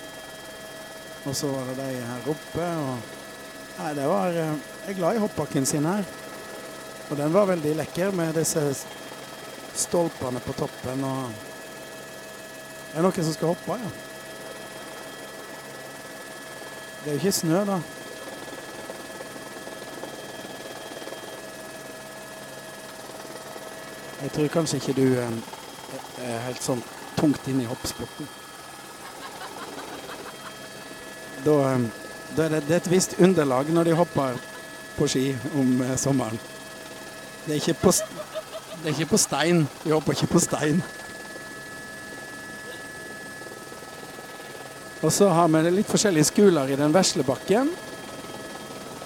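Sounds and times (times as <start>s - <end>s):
aircraft engine drone in cabin: 0.0s - 49.0s
thin high whines: 23.9s - 46.5s.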